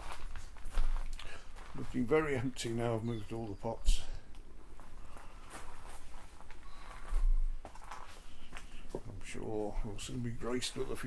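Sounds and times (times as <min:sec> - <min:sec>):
footsteps: 0:00.0 - 0:02.6, 0:04.6 - 0:11.0.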